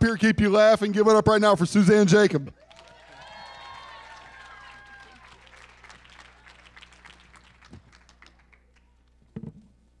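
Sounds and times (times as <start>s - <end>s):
audience applause: 2.6s - 9.0s.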